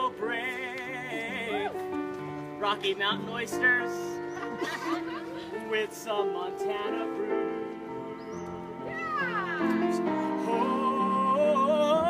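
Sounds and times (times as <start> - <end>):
grand piano chords: 0.0 - 12.0.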